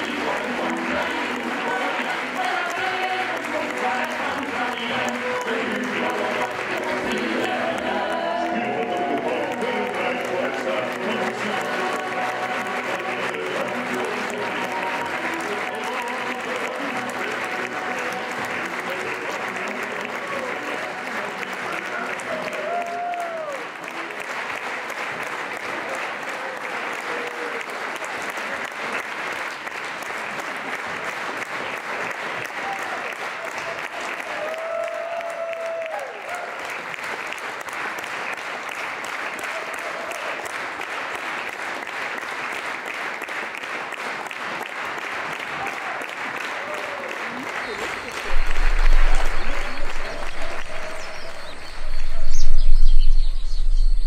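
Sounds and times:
large audience applauding: 0.0s - 53.9s.

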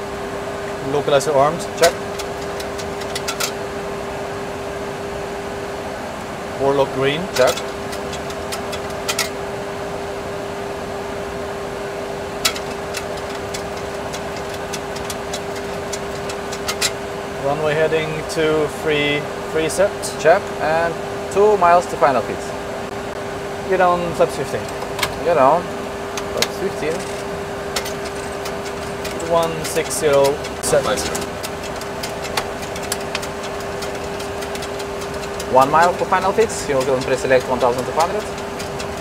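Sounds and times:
cockpit rushing hum: 0.0s - 39.0s
faint control clicks: 27.8s - 39.0s.

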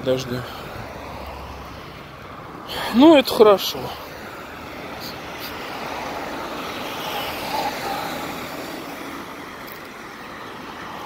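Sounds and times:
car passing by: 0.3s - 11.0s.

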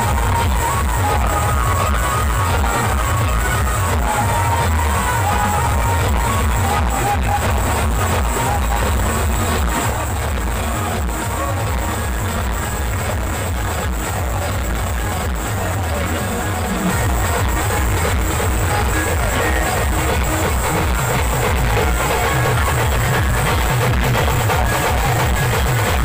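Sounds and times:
loud amplified band music: 0.0s - 26.0s.

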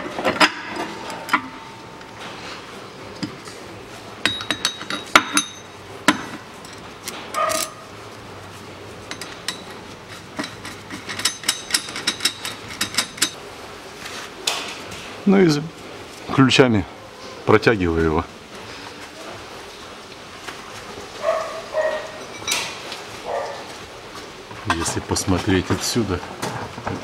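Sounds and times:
steel tool parts clinking: 4.2s - 5.7s, 9.1s - 13.4s.

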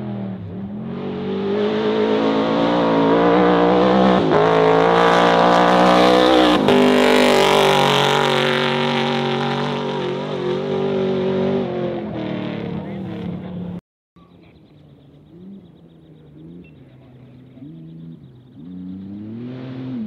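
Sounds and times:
race car engine passing at speed: 0.0s - 13.8s, 15.1s - 20.0s.

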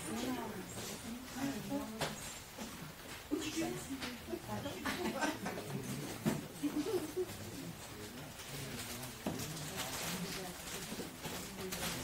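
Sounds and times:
low indistinct voices talking: 0.0s - 12.0s.

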